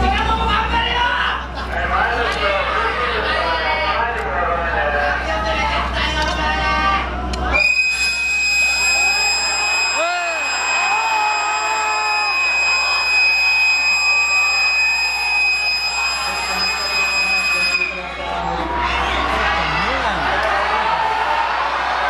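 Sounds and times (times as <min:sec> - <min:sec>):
crowd talking: 0:00.0 - 0:22.0
crowd cheering: 0:06.8 - 0:22.0
train whistle: 0:07.6 - 0:18.0.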